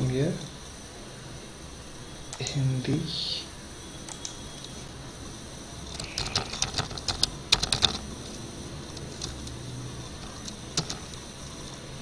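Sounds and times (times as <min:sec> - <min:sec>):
keyboard key clicks: 0:06.0 - 0:08.0, 0:10.2 - 0:11.2.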